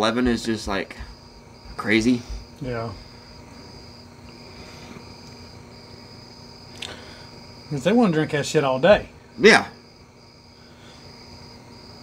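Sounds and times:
insect trilling: 0.0s - 12.0s.

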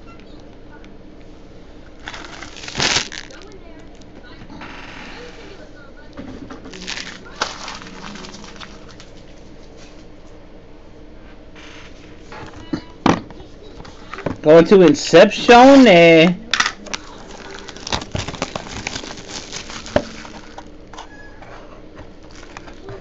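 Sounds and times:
foil wrapper crinkling and tearing: 2.0s - 3.6s, 6.7s - 9.3s, 15.6s - 16.0s, 16.8s - 20.7s, 22.2s - 22.9s.

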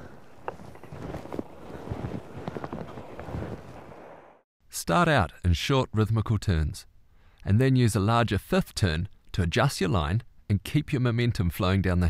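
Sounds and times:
faint clicks and rustles: 0.0s - 4.2s
wind buffeting microphone: 0.0s - 4.4s.

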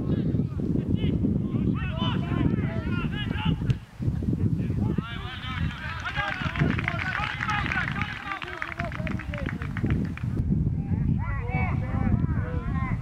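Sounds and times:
wind rumble on microphone: 0.0s - 13.0s
crowd shouting: 5.0s - 9.0s.

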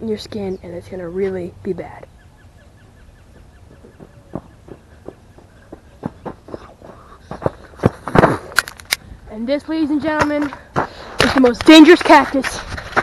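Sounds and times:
footsteps on gravel: 3.2s - 8.9s, 9.9s - 13.0s
sharp clicks: 8.5s - 9.1s.

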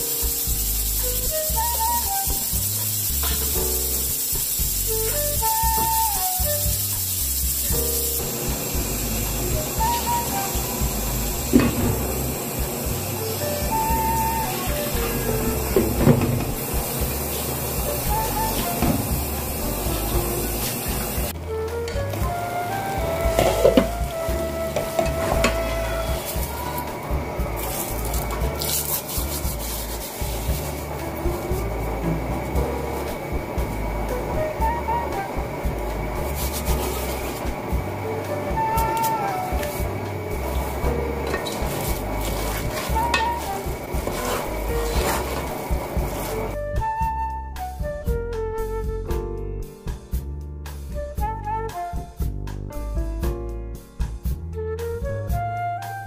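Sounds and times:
grain sizzling in a pot: 0.0s - 21.4s, 22.0s - 46.6s
steady hiss: 0.0s - 46.6s
music: 0.0s - 56.0s
wooden spoon scraping: 27.6s - 31.8s, 36.2s - 37.6s, 40.4s - 46.6s.

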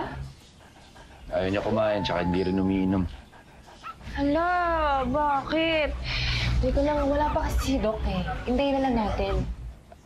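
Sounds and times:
dog whining: 1.0s - 5.9s.

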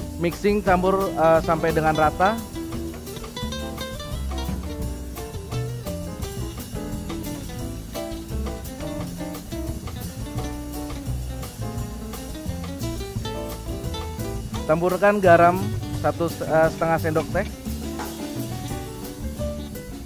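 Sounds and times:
guitar-led instrumental music: 0.0s - 20.0s
steady drum beat: 0.0s - 20.0s.

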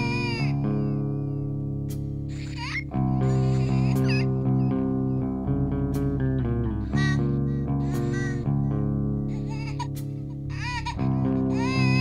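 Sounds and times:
guitar and bass chords: 0.0s - 12.0s.

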